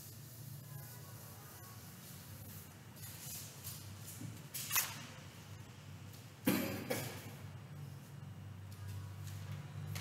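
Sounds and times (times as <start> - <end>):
person coughing: 6.4 - 7.3.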